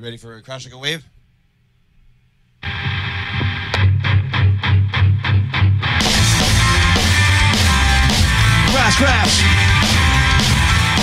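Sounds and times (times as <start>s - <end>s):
electric guitar and bass: 2.6s - 11.0s
heavy bass beats: 2.6s - 11.0s
live rock band playing: 2.6s - 11.0s.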